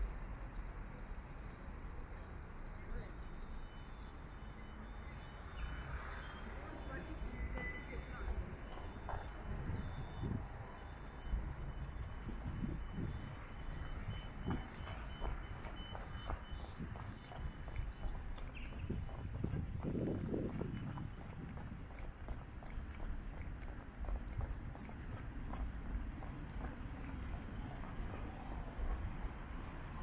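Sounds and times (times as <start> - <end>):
traffic rumble: 0.0 - 30.0
crossing signal high beep: 3.2 - 19.5.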